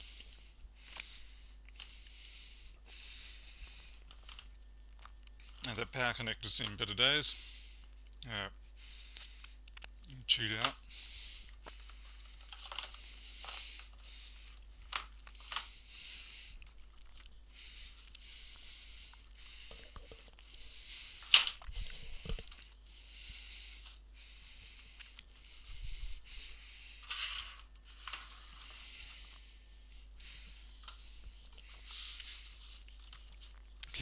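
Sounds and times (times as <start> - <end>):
plastic rustling and scraping: 3.7 - 4.6, 11.6 - 17.2, 17.9 - 22.8, 27.0 - 29.4, 30.7 - 33.8.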